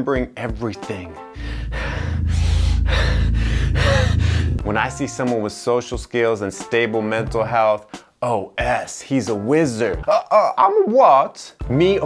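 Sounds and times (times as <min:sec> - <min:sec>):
breathy swells: 0:01.3 - 0:05.0
deep low drone music: 0:01.3 - 0:05.2.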